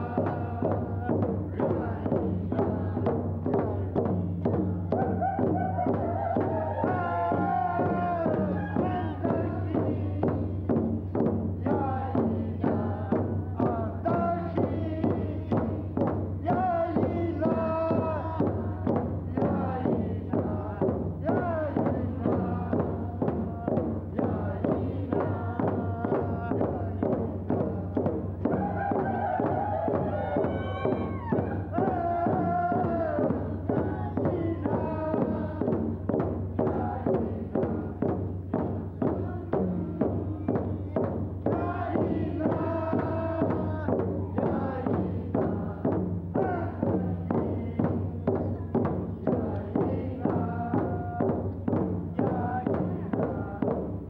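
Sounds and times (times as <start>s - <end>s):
men and women singing in unison: 0.0s - 54.0s
steady drumbeat: 0.0s - 54.0s.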